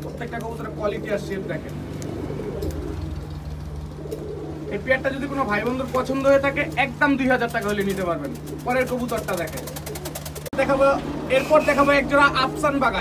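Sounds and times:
pigeons cooing: 0.0s - 13.0s.

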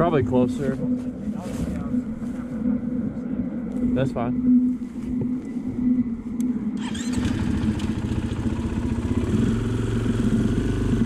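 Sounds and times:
dirt bike engine idling: 6.8s - 11.0s.

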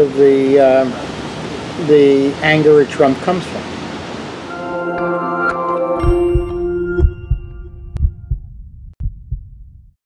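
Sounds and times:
held musical chord: 4.5s - 8.0s
heartbeat lub-dub beats: 6.0s - 9.9s.

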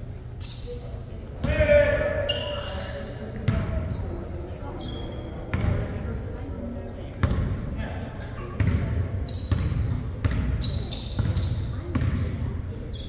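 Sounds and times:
sneaker squeaks: 0.2s - 6.5s, 7.2s - 13.0s
players' voices: 0.3s - 13.0s
basketball bouncing on hardwood: 11.9s - 12.2s.

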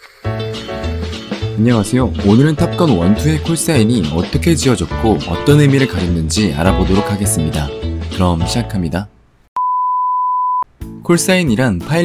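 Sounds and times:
electronic beep: 9.6s - 10.6s.

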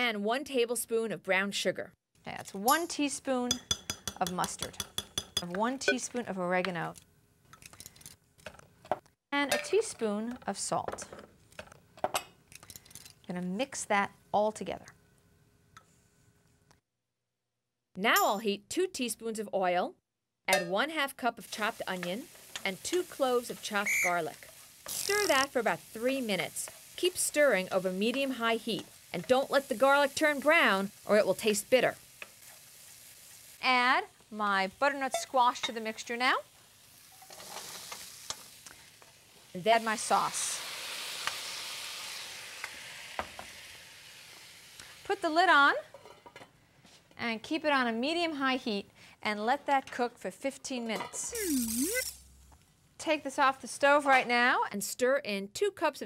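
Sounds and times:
metal spoon clicks and clinks: 3.5s - 5.5s
squash sizzling in skillet: 21.3s - 45.3s, 51.3s - 52.6s.

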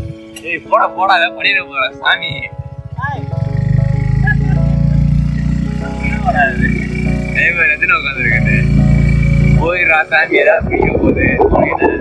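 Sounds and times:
motorcycle engine running: 2.1s - 11.8s.

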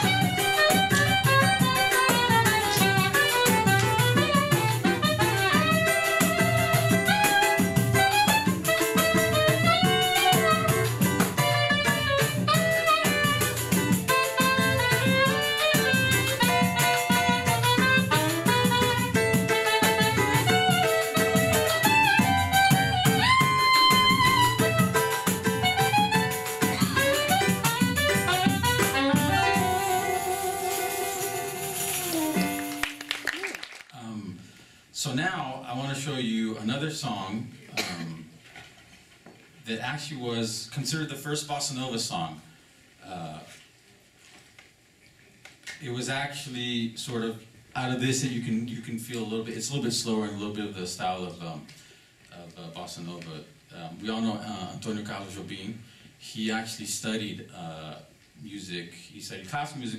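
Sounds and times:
strummed small guitar: 0.0s - 33.1s
saxophone melody: 0.0s - 33.4s
hand percussion: 0.0s - 33.5s.

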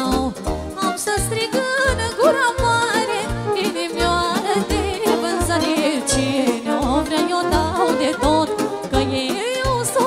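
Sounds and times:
violin: 0.0s - 10.0s
woman singing with vibrato: 0.0s - 10.0s.

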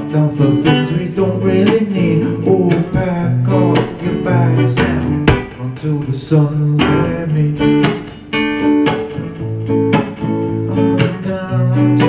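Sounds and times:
man singing wordless melody: 0.0s - 8.1s, 10.5s - 12.0s
acoustic guitar strumming: 0.0s - 12.0s.

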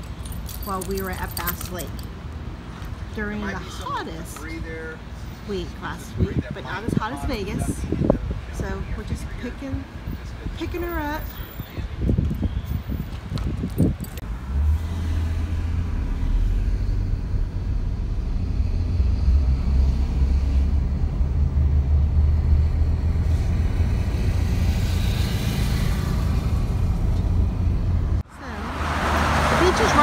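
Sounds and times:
car engine and road rumble: 0.0s - 30.0s.

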